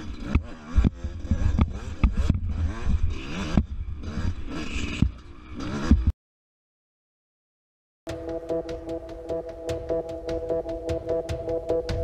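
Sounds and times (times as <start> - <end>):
dirt bike engine revving: 0.0 - 6.1
bike knocks and clatter: 0.2 - 2.5.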